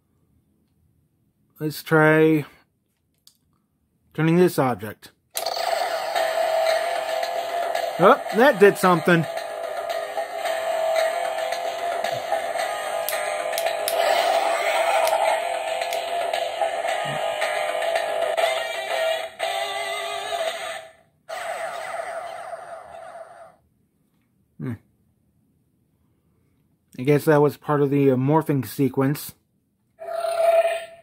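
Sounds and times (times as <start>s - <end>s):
toy electronic music and effects: 5.4s - 23.4s.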